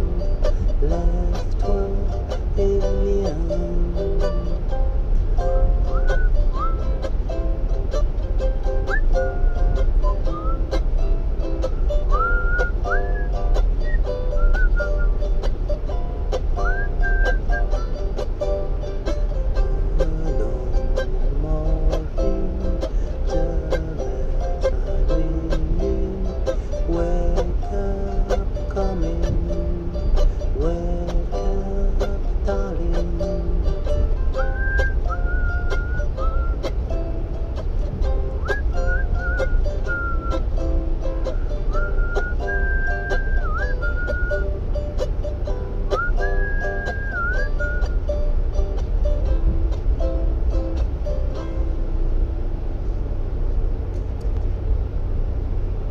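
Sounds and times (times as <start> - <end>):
steady low rumble: 0.0 - 55.9
ukulele picked lullaby: 0.0 - 55.9
whistled melody: 5.6 - 7.1, 8.7 - 10.8, 11.7 - 15.4, 16.6 - 17.9, 34.3 - 36.7, 38.4 - 40.6, 41.7 - 44.6, 45.9 - 48.1.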